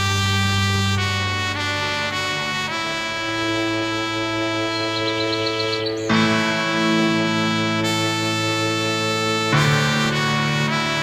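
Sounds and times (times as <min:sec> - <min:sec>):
held instrumental chord: 0:00.0 - 0:11.0.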